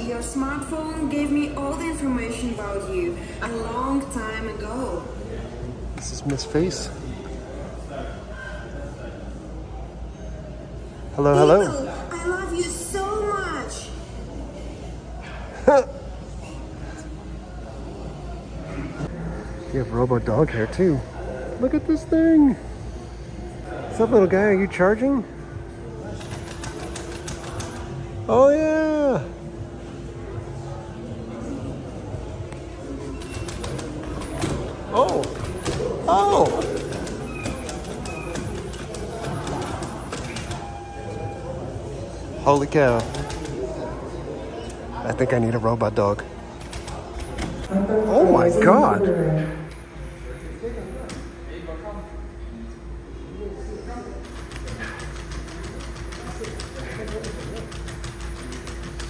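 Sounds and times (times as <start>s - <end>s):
steady hum: 0.0s - 59.0s.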